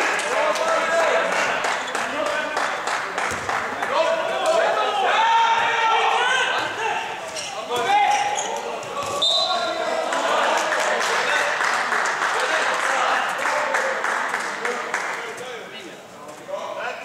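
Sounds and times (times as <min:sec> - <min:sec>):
crowd noise: 0:00.0 - 0:17.0
ball bouncing on hall floor: 0:03.2 - 0:03.6, 0:08.8 - 0:09.2
high whistle: 0:09.2 - 0:09.6.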